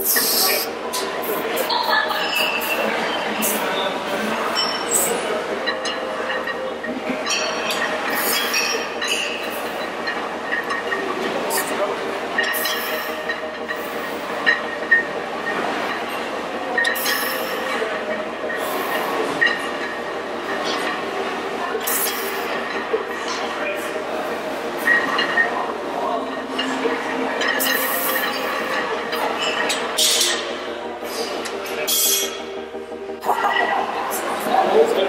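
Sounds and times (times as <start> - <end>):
background clamour with voices: 0.0 - 35.0
weights clanking: 2.2 - 32.6.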